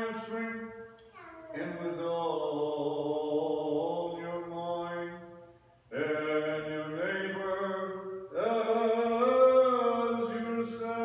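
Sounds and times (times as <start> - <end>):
man chanting: 0.0 - 0.8, 1.5 - 5.2, 5.9 - 11.0.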